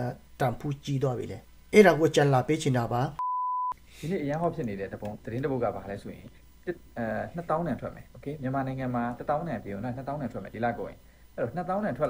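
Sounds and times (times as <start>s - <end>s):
censor bleep: 3.2s - 3.8s
man talking: 4.0s - 12.0s.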